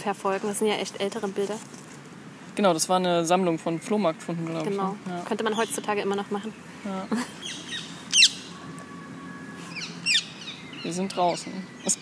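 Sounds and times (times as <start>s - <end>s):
songbird chirping: 2.6s - 12.0s.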